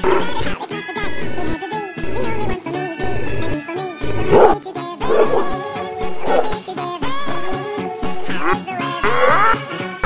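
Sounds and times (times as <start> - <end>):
dog giving rough vocal bursts: 0.0 - 0.5, 4.1 - 6.6
background music with steady beat: 0.0 - 10.0.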